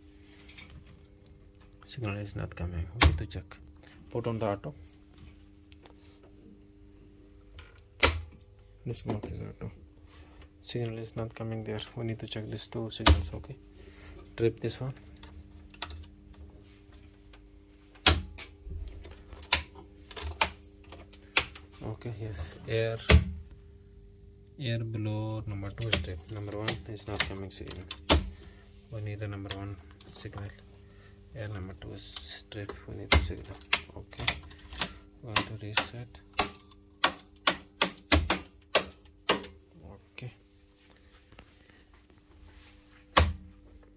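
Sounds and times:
steady electrical hum: 0.0 - 43.9
circuit breakers clicking: 2.8 - 3.5, 7.4 - 9.4, 12.9 - 13.5, 14.6 - 16.4, 17.2 - 23.6, 25.4 - 28.4, 31.4 - 39.6, 43.1 - 43.5.

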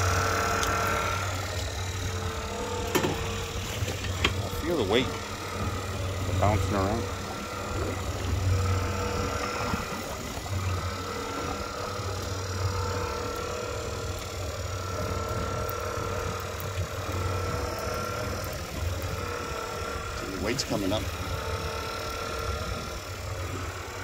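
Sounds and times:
boat motors throbbing: 0.0 - 24.0
thin even whine: 0.0 - 24.0.

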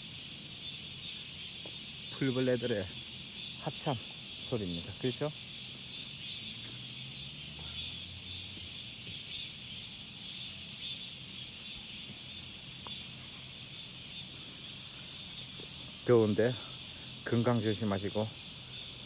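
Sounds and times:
insects buzzing: 0.0 - 19.0.

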